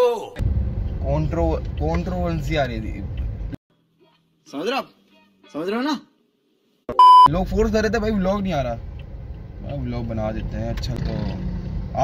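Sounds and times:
car interior rumble: 0.4 - 3.6, 7.3 - 11.0.

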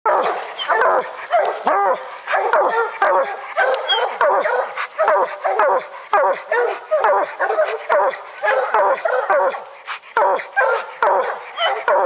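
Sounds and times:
hounds baying: 0.1 - 12.0.

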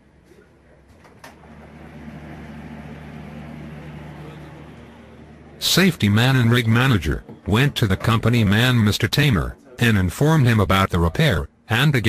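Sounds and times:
drilling machinery humming: 1.3 - 8.2.

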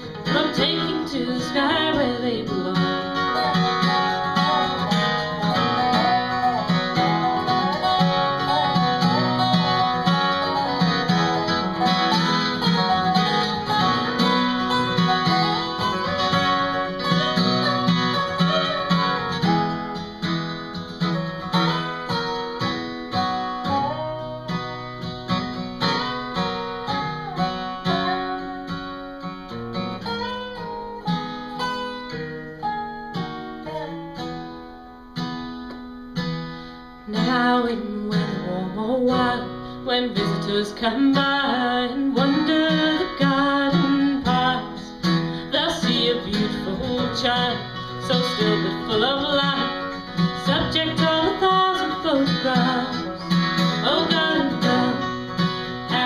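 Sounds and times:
acoustic guitar strumming: 0.0 - 56.0
slide guitar notes gliding: 0.0 - 56.0.

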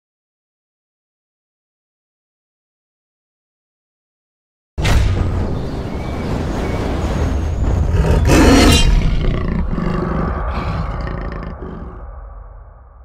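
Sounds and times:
deep rough rumbling roar: 6.6 - 13.0.

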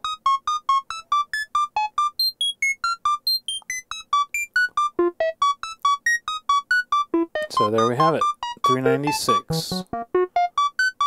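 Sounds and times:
synthesizer plucked notes sequence: 0.0 - 11.0.

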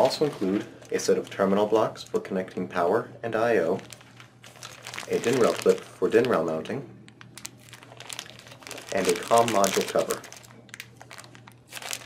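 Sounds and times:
plastic bag crinkling: 0.0 - 2.6, 3.6 - 12.0.

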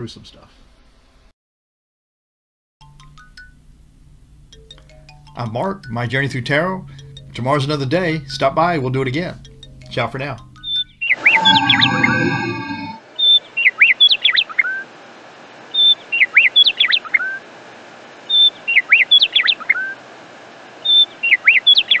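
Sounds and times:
bird singing whistled swoops: 11.0 - 13.0.

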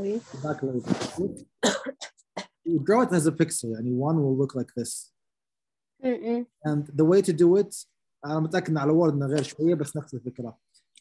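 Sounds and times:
person coughing: 1.6 - 2.5
unclear speech: 6.0 - 10.6.

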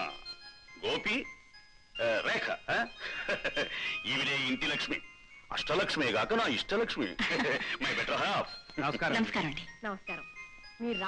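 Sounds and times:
faint background music: 0.0 - 11.0.

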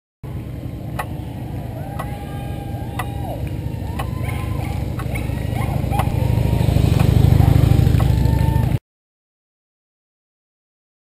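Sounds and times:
motorcycle and truck engines rumbling: 0.2 - 8.8
rising and falling tones: 0.9 - 8.8.

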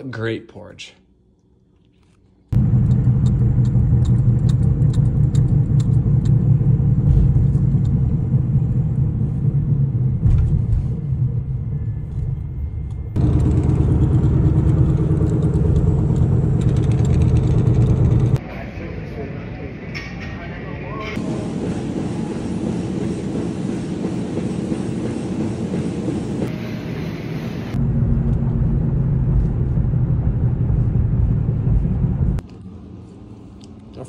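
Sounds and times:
car engine rumble: 2.5 - 18.4, 27.7 - 32.6
road noise: 2.6 - 21.4, 26.4 - 34.0.

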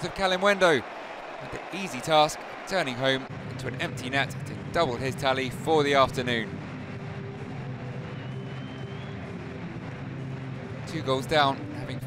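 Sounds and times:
stadium crowd roar: 0.0 - 11.3
faint high whistle: 8.2 - 9.3.

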